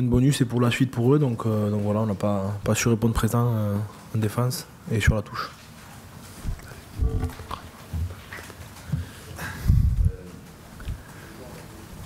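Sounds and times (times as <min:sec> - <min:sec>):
faint room noise: 0:00.0 - 0:12.0
dull low thumps: 0:09.6 - 0:10.2.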